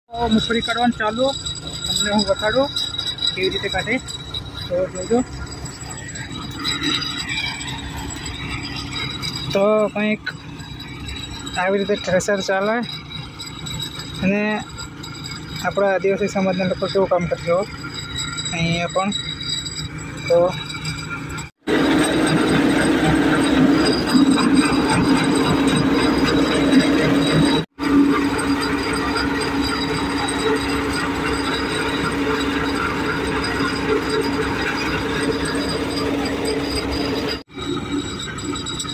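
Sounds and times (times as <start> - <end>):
thresher hum and rattle: 0.1 - 38.9.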